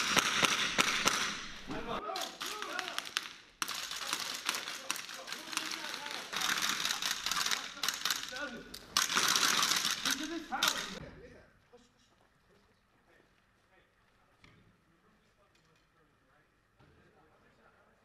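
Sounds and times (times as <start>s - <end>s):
rapid rifle fire: 0.0s - 1.6s, 2.4s - 8.4s, 9.0s - 11.0s.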